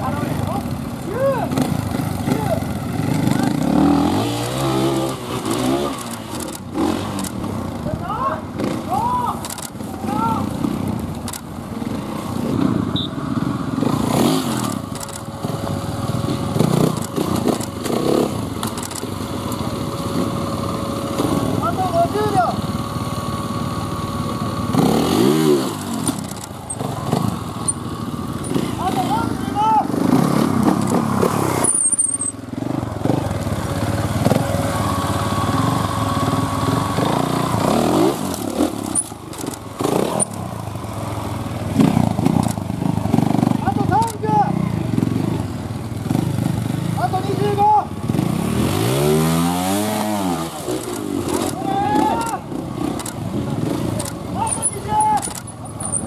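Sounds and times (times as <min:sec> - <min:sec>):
people's voices: 0:00.0 - 0:03.7, 0:28.5 - 0:30.0, 0:51.3 - 0:52.5, 0:53.5 - 0:55.5
motorcycle engine revving: 0:00.0 - 0:56.0.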